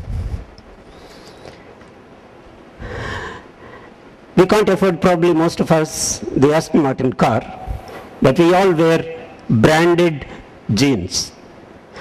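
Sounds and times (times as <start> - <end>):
faint steady hiss: 0.0 - 12.0
man breathing in: 2.8 - 4.0.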